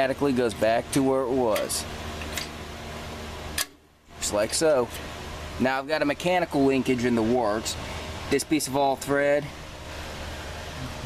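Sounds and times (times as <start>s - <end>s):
metal click of throttle linkage: 1.5s - 2.6s, 3.5s - 3.8s.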